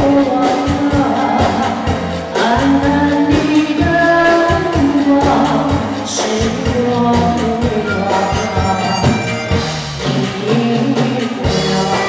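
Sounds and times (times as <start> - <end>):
live band playing: 0.0 - 12.0
woman singing pop song: 0.0 - 12.0.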